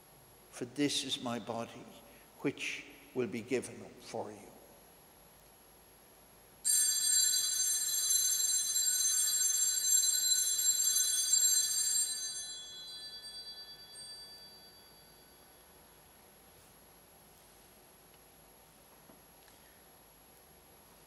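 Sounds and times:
altar bells ringing: 0:06.7 - 0:15.9.

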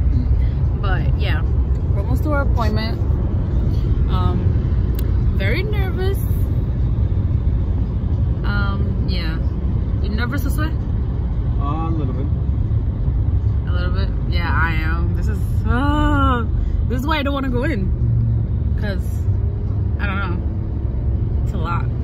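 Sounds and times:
car interior road rumble: 0:00.0 - 0:22.0.

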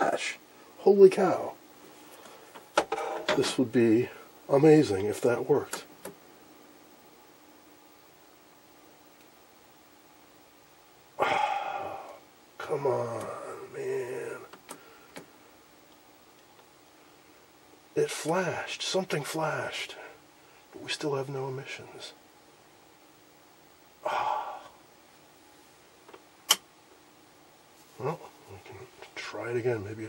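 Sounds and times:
sharp click: 0:26.1 - 0:26.7.

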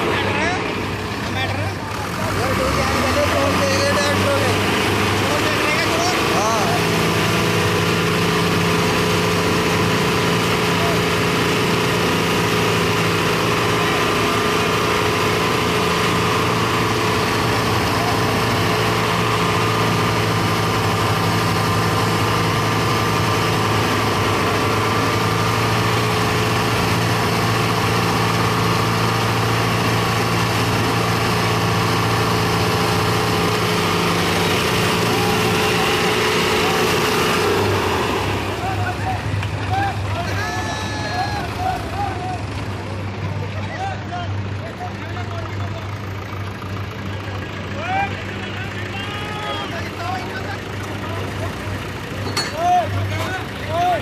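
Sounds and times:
diesel tractors at high throttle: 0:00.0 - 0:54.0.

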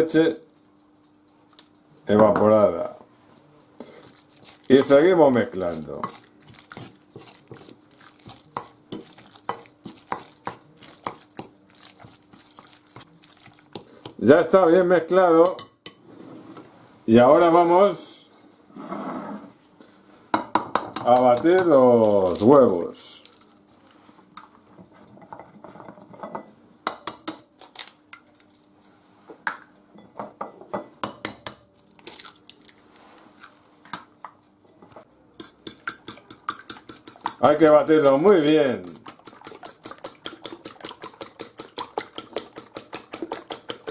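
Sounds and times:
fork beating eggs on plate: 0:03.8 - 0:14.2, 0:20.7 - 0:22.5, 0:35.4 - 0:43.9
fork scraping glass bowl: 0:04.0 - 0:13.9
eggs cracking on plate: 0:04.0 - 0:14.2, 0:35.4 - 0:43.9.

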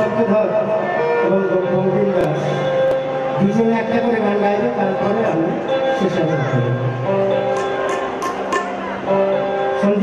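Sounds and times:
instrumental backing: 0:00.0 - 0:10.0
sharp percussion strikes: 0:07.2 - 0:09.4.

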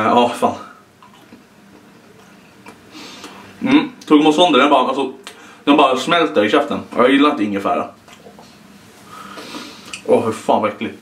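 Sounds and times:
small mouth clicks: 0:09.4 - 0:10.1.

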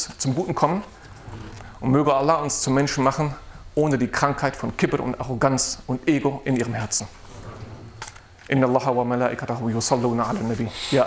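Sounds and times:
man speaking: 0:00.0 - 0:01.0, 0:01.8 - 0:07.2, 0:08.5 - 0:11.0.

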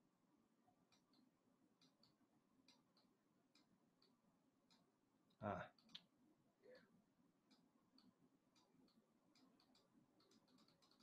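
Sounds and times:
computer mouse clicks: 0:00.8 - 0:04.9, 0:05.7 - 0:06.1, 0:06.8 - 0:11.0.

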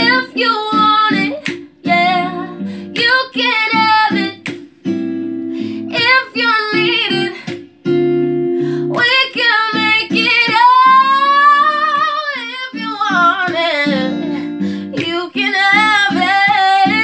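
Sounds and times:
woman singing: 0:00.0 - 0:04.7, 0:05.7 - 0:07.9, 0:08.7 - 0:17.0
acoustic guitar: 0:00.0 - 0:17.0.

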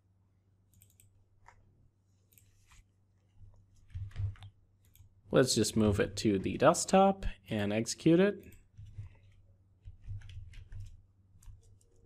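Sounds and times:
faint computer mouse clicks: 0:00.7 - 0:01.6.

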